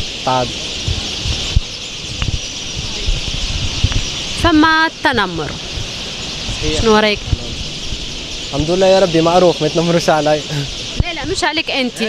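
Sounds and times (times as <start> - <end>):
steady high hiss: 0.0 - 12.0
wind buffeting microphone: 0.0 - 12.0.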